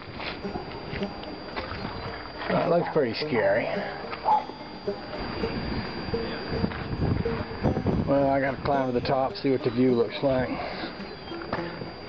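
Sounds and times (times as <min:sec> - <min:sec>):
faint background music: 0:00.0 - 0:12.0
wind on microphone: 0:04.3 - 0:12.0.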